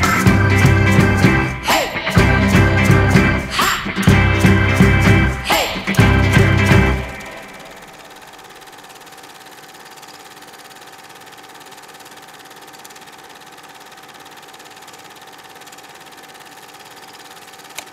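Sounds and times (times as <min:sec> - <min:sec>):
music: 0:00.0 - 0:07.8
faint hum: 0:00.0 - 0:08.7
film projector whirring and clattering: 0:05.9 - 0:17.9.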